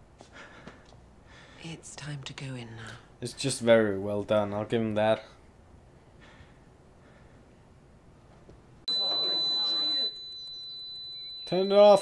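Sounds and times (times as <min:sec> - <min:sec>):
high-pitched electronic beep tone: 0:08.9 - 0:12.0.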